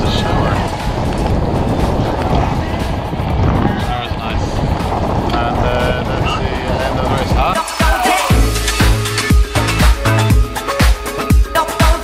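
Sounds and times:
wind buffeting microphone: 0.0 - 7.6.

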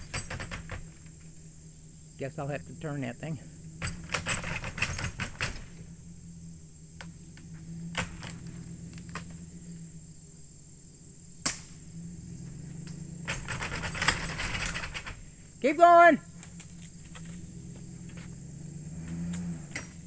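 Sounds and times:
vehicle engine running low: 0.0 - 20.0
sharp cracks: 7.0 - 9.5, 11.4 - 12.0, 12.8 - 18.4.

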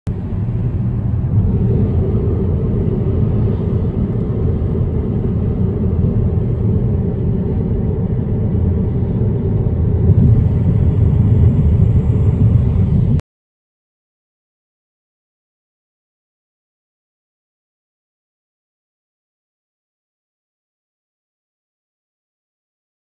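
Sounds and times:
road and tyre rumble in car: 0.1 - 13.2.

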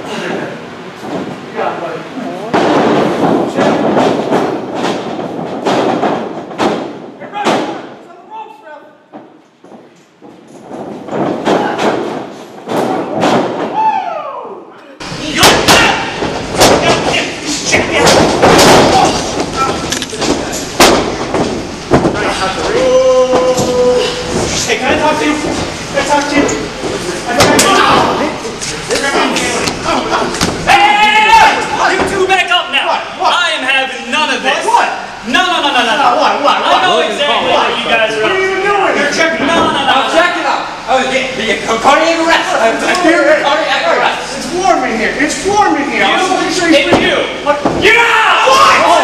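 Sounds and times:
people shouting: 13.7 - 20.0, 22.2 - 24.6, 27.3 - 28.4, 29.2 - 32.9, 47.5 - 49.0.

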